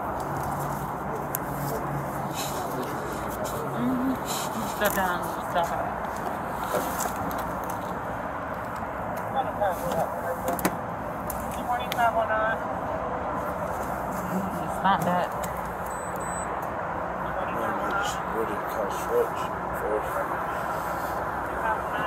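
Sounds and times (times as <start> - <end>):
outdoor background noise: 0.0 - 22.0
indistinct voices: 1.0 - 5.9.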